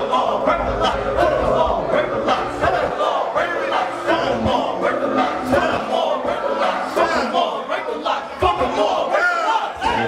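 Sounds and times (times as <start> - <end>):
crowd shouting: 0.0 - 10.0
person rapping into microphone: 0.0 - 10.0.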